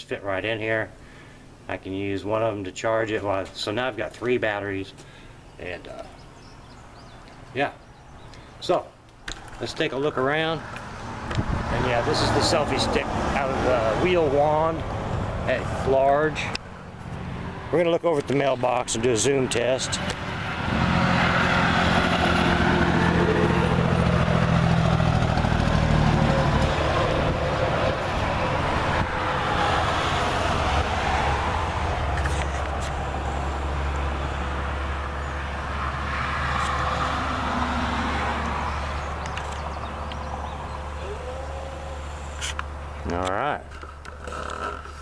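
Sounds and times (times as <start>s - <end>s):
truck driving past: 10.0s - 17.8s, 18.5s - 43.0s.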